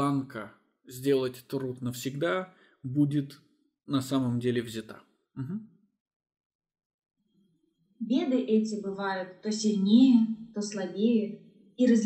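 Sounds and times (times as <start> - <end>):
man murmuring uh-huh: 5.4 - 5.6.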